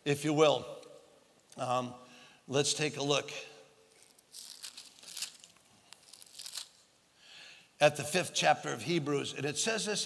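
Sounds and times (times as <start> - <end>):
thin pages turning: 3.9 - 6.8.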